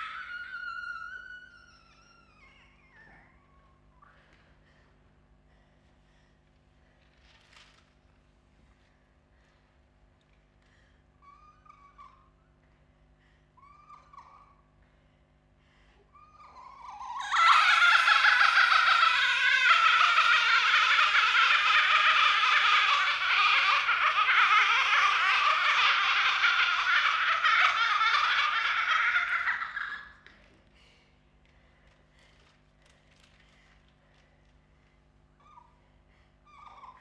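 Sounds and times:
faint squeaky vocal sounds: 0.0 - 4.4, 11.2 - 12.7, 13.5 - 14.8, 16.1 - 30.2, 35.4 - 37.0
loud dense laughter: 17.2 - 30.2.

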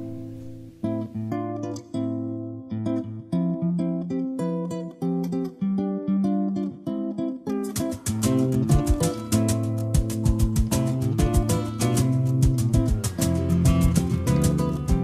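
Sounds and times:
strummed acoustic guitar: 0.0 - 15.0.

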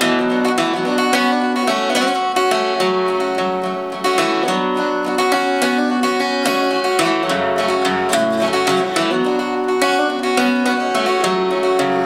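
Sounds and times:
solo acoustic guitar: 0.0 - 12.0.

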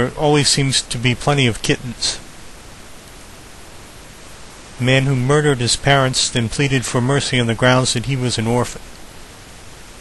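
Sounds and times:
man speaking: 0.0 - 2.3, 4.8 - 8.9
steady background hiss: 0.0 - 10.0.

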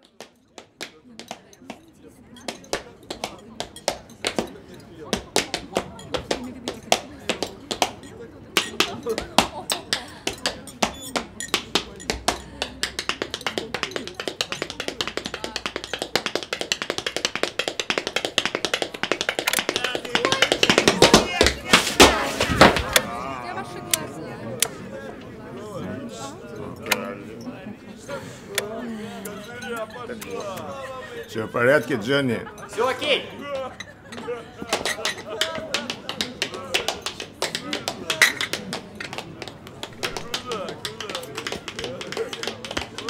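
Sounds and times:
dance steps tapping and stamping: 0.0 - 1.8, 2.5 - 23.0, 34.6 - 43.0
murmur of voices: 0.0 - 43.0.

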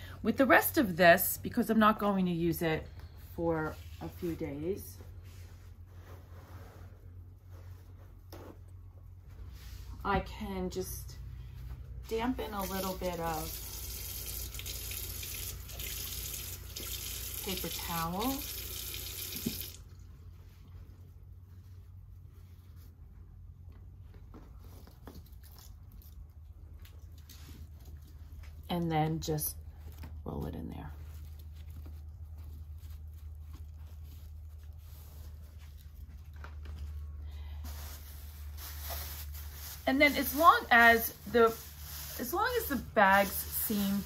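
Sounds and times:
paper towel rustling: 3.0 - 10.4, 11.5 - 25.0, 29.7 - 44.0
tap running into sink: 19.0 - 19.8.

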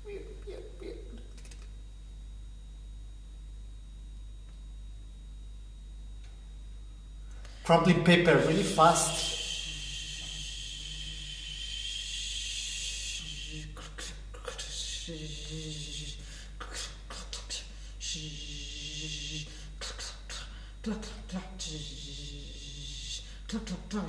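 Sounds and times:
buzzing voiced hisses: 8.4 - 20.7
mouth hissing: 8.7 - 17.6.

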